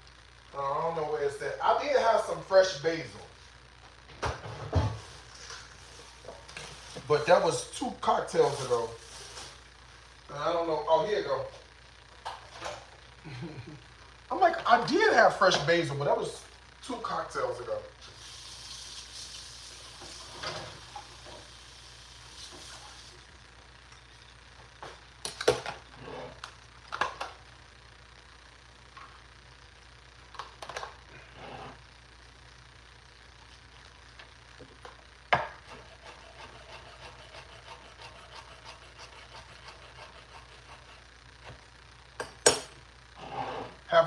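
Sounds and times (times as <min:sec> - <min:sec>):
low steady hum: 0:00.0 - 0:44.0
soft hiss: 0:04.8 - 0:25.3.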